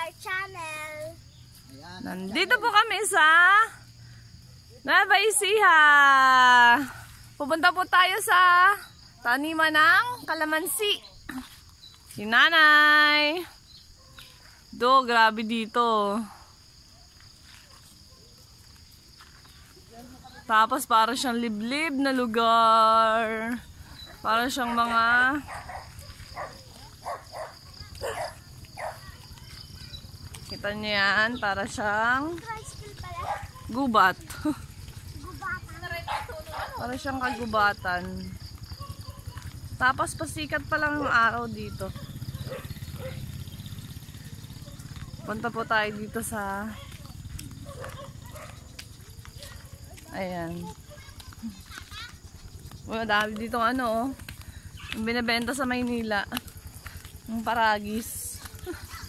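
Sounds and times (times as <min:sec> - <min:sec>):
insects chirring: 0:00.0 - 0:59.0
woman's voice: 0:02.0 - 0:04.0, 0:04.7 - 0:13.6, 0:14.7 - 0:16.5, 0:19.9 - 0:29.4, 0:30.4 - 0:42.1, 0:44.9 - 0:47.5, 0:49.4 - 0:51.8, 0:52.8 - 0:59.0
footsteps on dirt path: 0:09.8 - 0:14.8, 0:15.6 - 0:59.0
distant dog barking: 0:13.4 - 0:14.5, 0:24.0 - 0:29.9, 0:32.6 - 0:33.8, 0:36.0 - 0:37.7, 0:38.6 - 0:39.6, 0:41.6 - 0:50.0.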